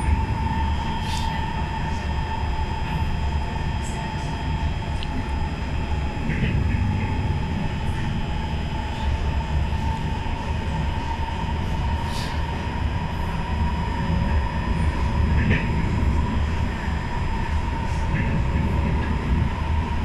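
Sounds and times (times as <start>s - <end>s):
faint train squeals: 0.0s - 20.0s
steady train whine: 0.0s - 20.0s
wheels rumbling on rail: 0.0s - 20.0s.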